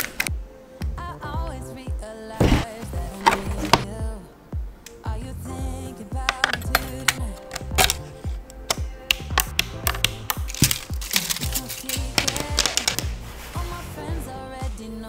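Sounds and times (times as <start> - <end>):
pop song with steady beat: 0.0 - 15.0.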